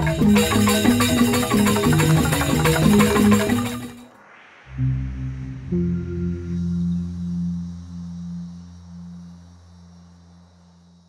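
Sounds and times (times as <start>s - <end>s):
low ringing sustained note: 4.8s - 11.0s.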